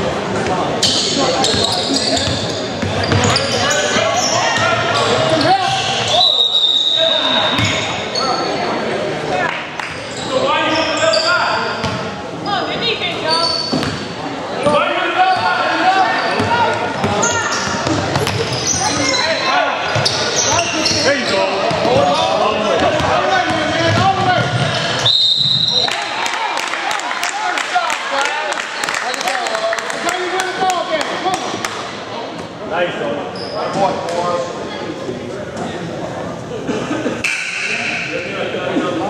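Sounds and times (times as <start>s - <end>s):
referee's whistle blast: 6.0s - 7.8s, 25.0s - 26.0s.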